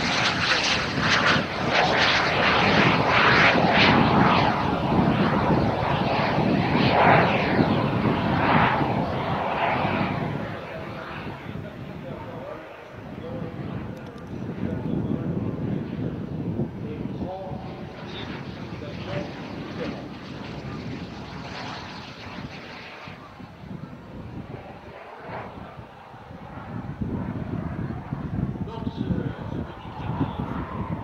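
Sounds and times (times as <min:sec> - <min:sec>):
jet engine rush: 0:00.0 - 0:31.0.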